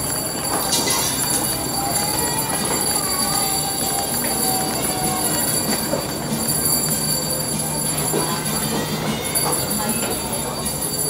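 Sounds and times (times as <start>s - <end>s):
busy mall background noise: 0.0s - 11.0s
shopping trolley wheels rolling: 0.0s - 11.0s.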